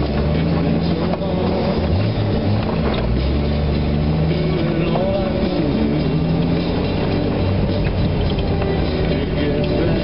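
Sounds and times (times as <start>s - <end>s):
car engine driving: 0.0s - 10.0s
rock music: 0.0s - 10.0s.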